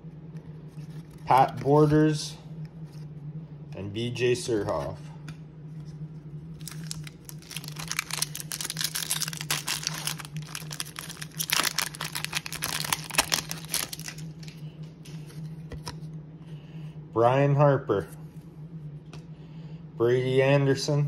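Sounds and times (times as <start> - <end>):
wrapper crinkling and tearing: 6.5 - 14.6.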